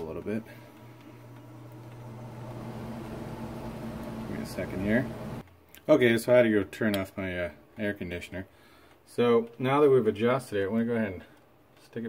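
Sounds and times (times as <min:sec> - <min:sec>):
air conditioner humming: 0:00.0 - 0:05.5
air conditioner hiss: 0:00.0 - 0:11.1.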